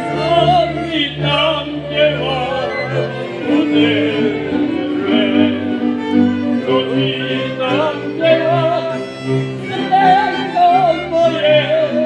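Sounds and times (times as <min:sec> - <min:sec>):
man singing folk song: 0:00.0 - 0:05.9, 0:06.6 - 0:09.1, 0:09.7 - 0:12.0
folk band with violins and cimbalom: 0:00.0 - 0:12.0.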